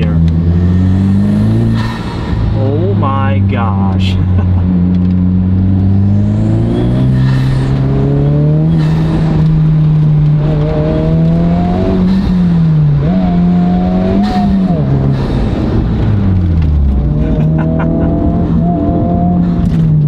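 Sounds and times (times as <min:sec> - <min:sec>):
car engine accelerating: 0:00.0 - 0:20.0.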